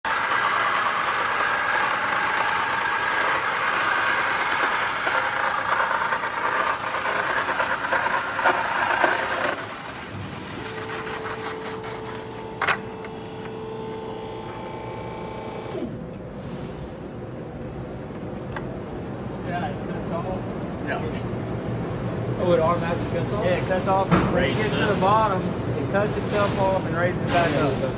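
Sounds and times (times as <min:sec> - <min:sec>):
saw motor humming: 0:00.0 - 0:09.8, 0:10.5 - 0:16.0
bandsaw cutting sheet metal: 0:00.0 - 0:15.8.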